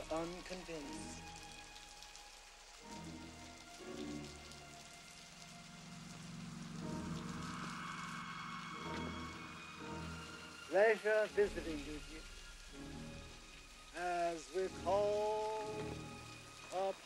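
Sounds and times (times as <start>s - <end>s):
film score music: 0.0s - 17.0s
steady rain falling: 0.0s - 17.0s.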